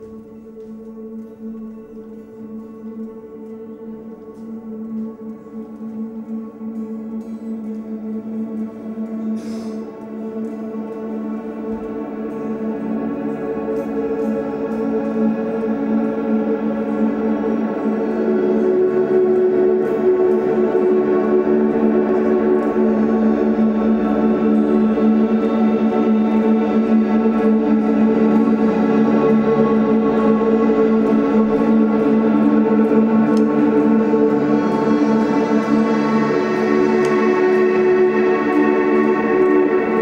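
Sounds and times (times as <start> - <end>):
electric guitars ambient drone: 0.0 - 40.0.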